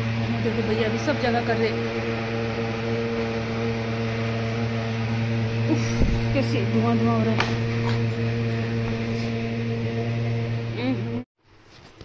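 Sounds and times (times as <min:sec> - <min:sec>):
fogging machine droning hum: 0:00.0 - 0:11.3.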